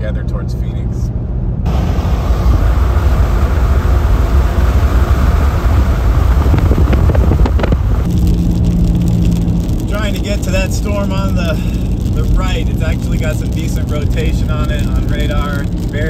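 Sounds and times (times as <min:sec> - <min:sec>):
car tyre and wind noise: 0:00.0 - 0:16.0.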